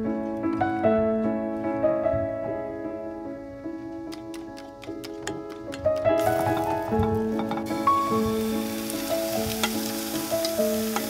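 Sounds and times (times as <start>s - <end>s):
soft piano music: 0.0s - 11.0s.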